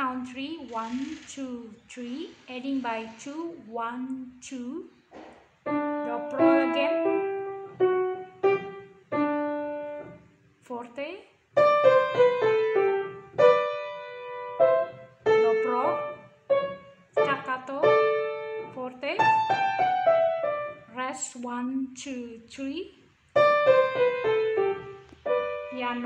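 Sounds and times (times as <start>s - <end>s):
piano melody: 5.6s - 10.3s, 11.6s - 20.9s, 23.4s - 26.0s.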